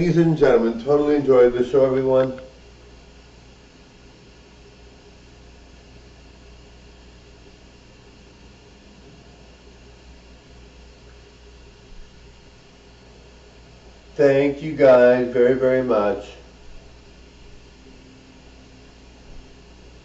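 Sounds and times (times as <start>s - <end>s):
background hiss: 0.0s - 20.0s
low electrical hum: 0.0s - 20.0s.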